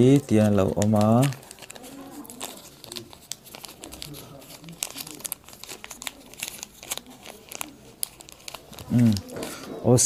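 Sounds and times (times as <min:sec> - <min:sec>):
wrapper crinkling: 0:00.0 - 0:09.7.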